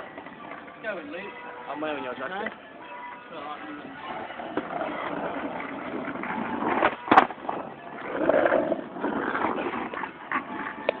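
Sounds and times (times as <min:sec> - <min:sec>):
skateboard wheels rolling on asphalt: 0:00.0 - 0:02.7, 0:03.3 - 0:11.0
skateboard clack: 0:00.1 - 0:00.8, 0:03.8 - 0:11.0.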